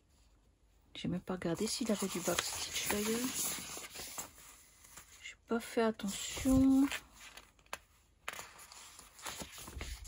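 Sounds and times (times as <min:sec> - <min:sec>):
paper rustling and flapping: 0:01.7 - 0:05.2, 0:06.1 - 0:10.0.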